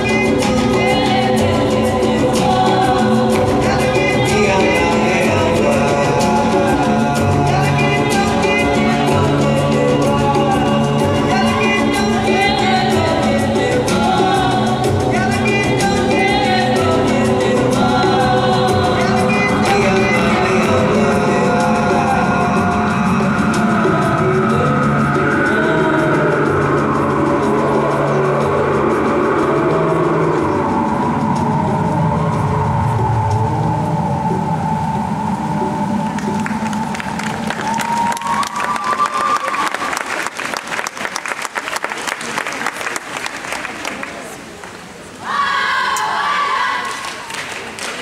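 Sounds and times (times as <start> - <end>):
music over a sound system: 0.0 - 40.8
audience applause: 36.0 - 44.9, 46.9 - 48.0.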